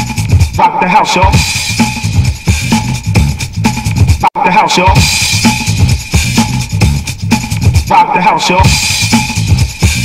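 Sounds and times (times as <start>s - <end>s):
house music: 0.0s - 10.0s.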